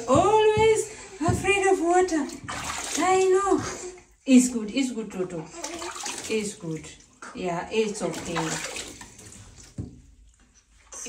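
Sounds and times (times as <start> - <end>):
light water splashing and dripping: 0.9 - 4.0, 5.5 - 10.6.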